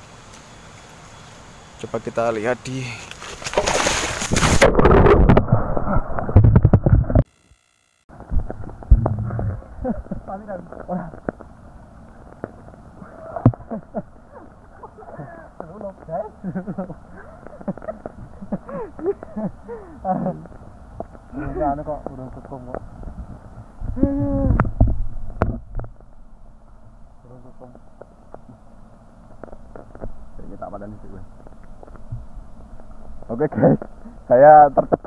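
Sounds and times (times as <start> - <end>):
water sloshing: 3.2 - 4.7.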